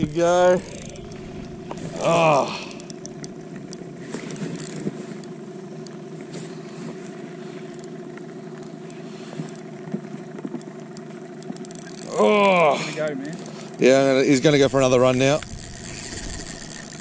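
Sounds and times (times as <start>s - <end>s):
boat motor humming: 0.0s - 17.0s.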